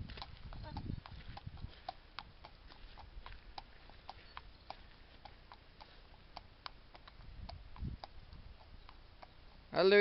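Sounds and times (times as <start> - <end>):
horse hooves clip-clopping on tarmac: 0.0 - 10.0.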